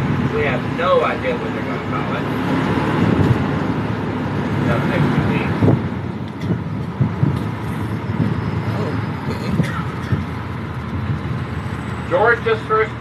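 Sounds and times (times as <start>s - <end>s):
vehicle engine and road rumble: 0.0s - 13.0s.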